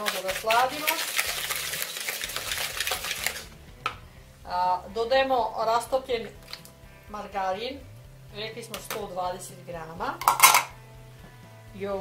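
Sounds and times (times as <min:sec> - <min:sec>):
whisk scraping in plastic bowl: 0:00.0 - 0:03.5.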